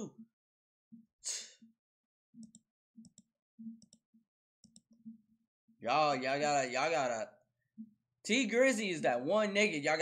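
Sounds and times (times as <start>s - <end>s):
computer mouse clicking: 2.4s - 5.1s.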